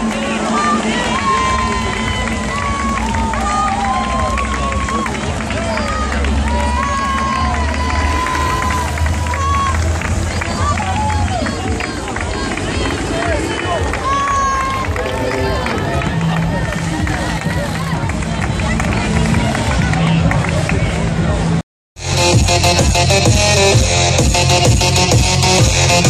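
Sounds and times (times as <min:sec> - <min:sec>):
crowd chatter: 0:00.0 - 0:21.6
loudspeaker music with low bass: 0:00.0 - 0:26.0.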